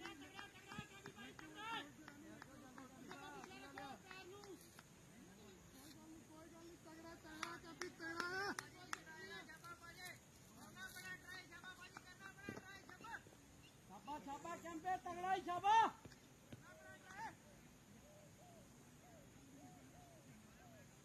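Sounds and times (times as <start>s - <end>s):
distant people talking: 0.0s - 21.0s.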